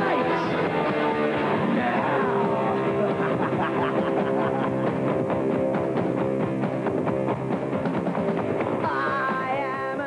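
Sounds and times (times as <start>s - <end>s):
punk rock band playing: 0.0s - 10.0s.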